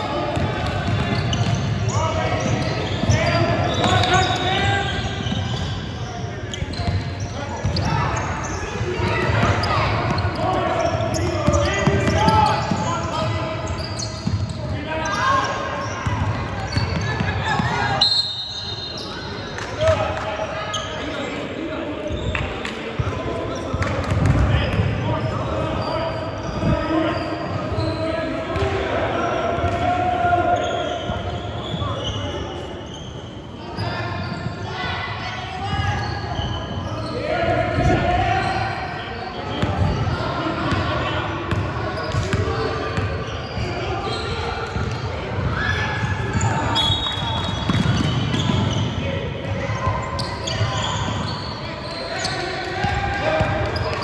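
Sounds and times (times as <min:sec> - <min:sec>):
indistinct shouting and chatter: 0:00.0 - 0:54.0.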